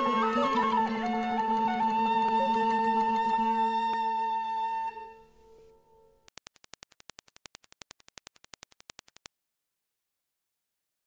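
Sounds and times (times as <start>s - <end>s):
rapid sharp clicks: 6.3s - 9.3s.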